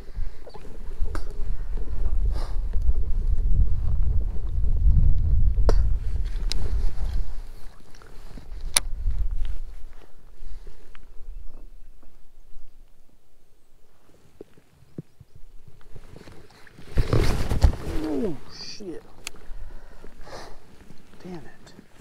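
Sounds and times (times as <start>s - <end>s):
wind buffeting microphone: 0.0s - 12.4s.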